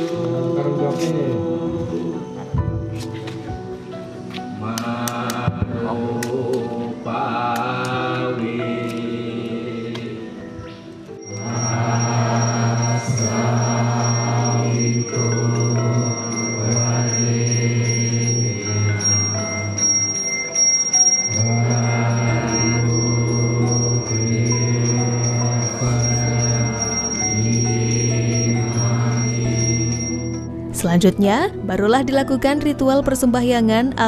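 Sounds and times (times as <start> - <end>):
music of low drawn-out tones: 0.0 - 34.0
small hand bell ringing: 11.2 - 30.5.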